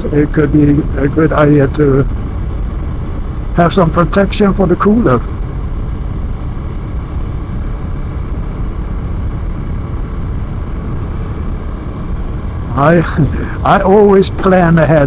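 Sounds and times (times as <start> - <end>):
motorcycle engine running: 0.0 - 15.0
wind and road rumble: 0.0 - 15.0.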